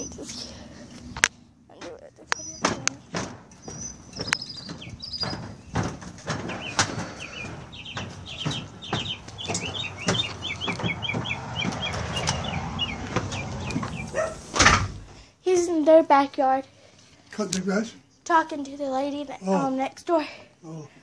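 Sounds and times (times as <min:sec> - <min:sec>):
bird chirping rapidly: 0:02.3 - 0:14.6
knocks and thumps from handling: 0:02.6 - 0:15.1.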